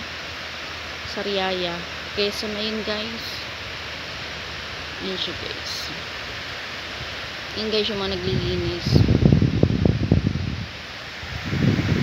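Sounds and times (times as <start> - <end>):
faint steady hiss: 0.0 - 12.0
wind buffeting microphone: 6.9 - 12.0.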